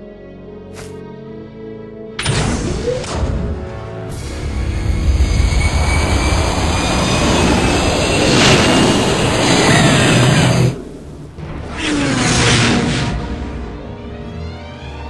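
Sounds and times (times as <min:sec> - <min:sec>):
rushing starfighter engine: 0:04.1 - 0:11.3.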